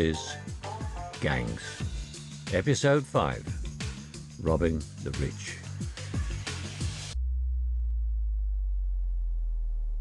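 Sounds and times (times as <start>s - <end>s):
deep steady bass tone: 7.0s - 10.0s.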